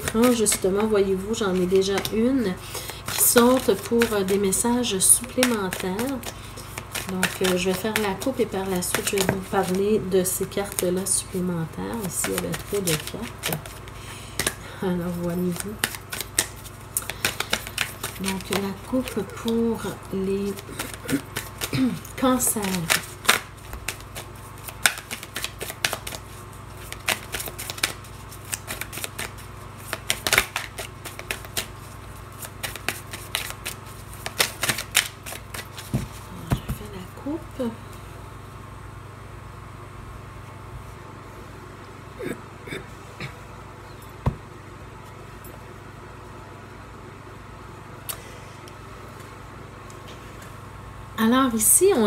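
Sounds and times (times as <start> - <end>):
cards being shuffled: 0.0 - 37.0
low steady hum: 0.0 - 52.0.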